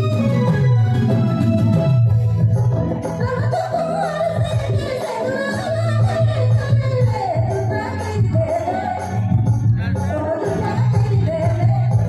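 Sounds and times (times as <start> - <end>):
live band with keyboard: 0.0 - 12.0
woman singing into microphone: 3.1 - 12.0
low bass: 9.1 - 12.0.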